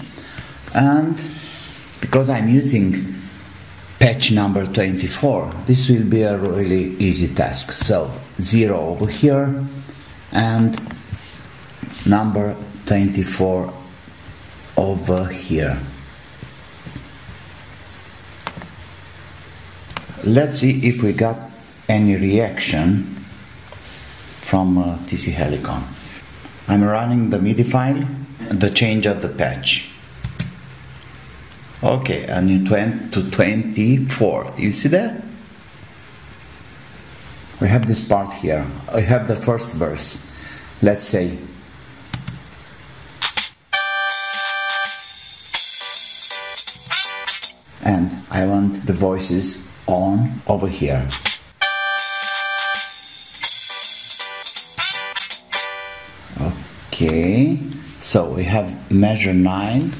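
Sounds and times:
microphone hiss: 0.0 - 59.9
computer mouse clicks: 42.1 - 42.4.

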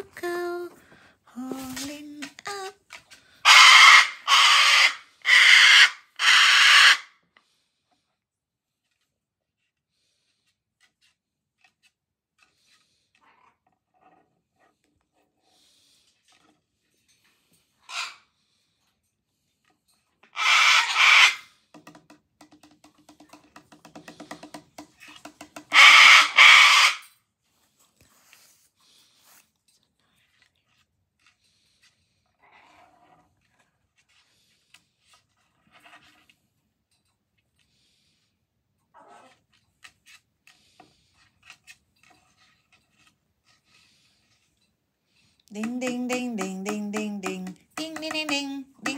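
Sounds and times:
cockatoo screeching: 3.4 - 7.1, 20.3 - 21.5, 25.7 - 27.1
bird claws scratching on wood: 20.4 - 27.0, 39.2 - 45.3
cockatoo clicking chatter: 45.5 - 48.9.

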